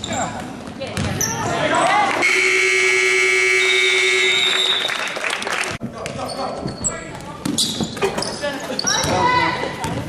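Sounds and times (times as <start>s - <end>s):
scoreboard buzzer blast: 2.2s - 4.5s.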